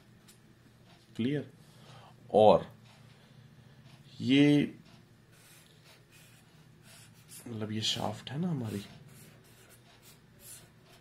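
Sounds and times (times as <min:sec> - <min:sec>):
pen drawing on paper: 0:05.3 - 0:07.5, 0:08.6 - 0:11.0.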